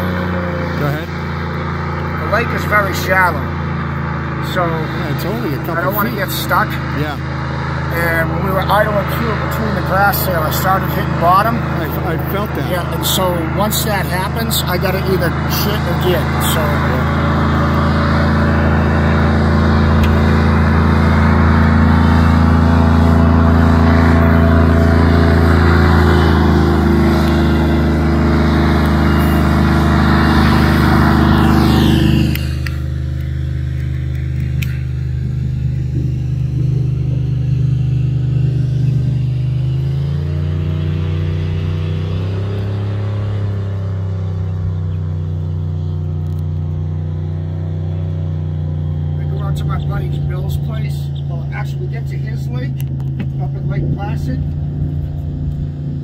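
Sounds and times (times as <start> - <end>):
airboat engine and propeller: 0.0 - 56.0.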